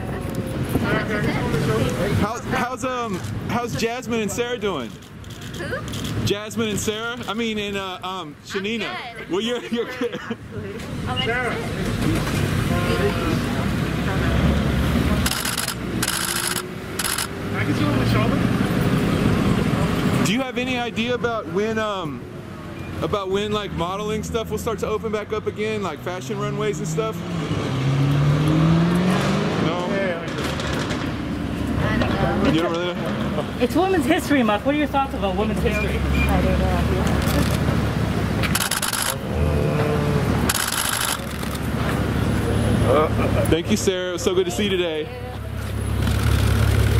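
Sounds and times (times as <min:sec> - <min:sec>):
street traffic rumble: 0:00.0 - 0:46.9
camera shutters clicking rapidly: 0:15.2 - 0:17.3, 0:37.2 - 0:37.7, 0:38.4 - 0:39.2, 0:40.5 - 0:41.7, 0:46.0 - 0:46.9.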